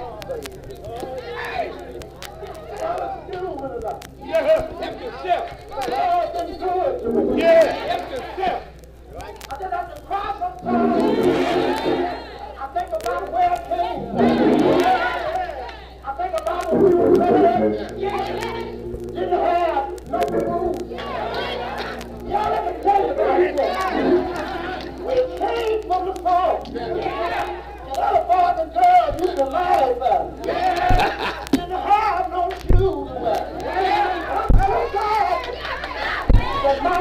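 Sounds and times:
congregation shouting and singing: 0.0 - 37.0.

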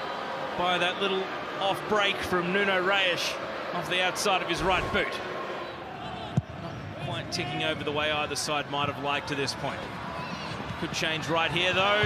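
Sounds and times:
stadium crowd murmur: 0.0 - 12.0.

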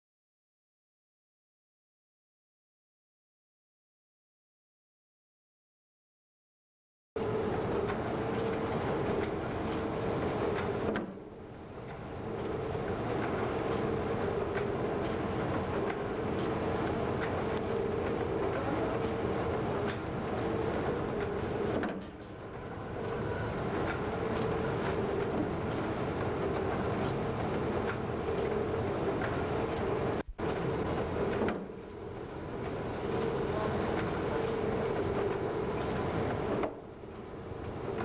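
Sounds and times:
steady machine hum: 7.2 - 38.0.

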